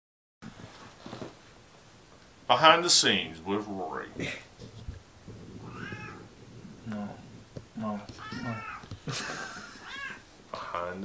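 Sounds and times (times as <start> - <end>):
cat meowing: 5.6 - 6.3, 8.1 - 8.9, 9.8 - 10.3.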